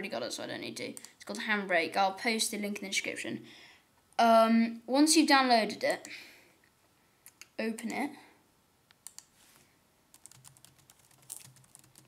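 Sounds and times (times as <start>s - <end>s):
typing on computer keyboard: 10.1s - 12.0s.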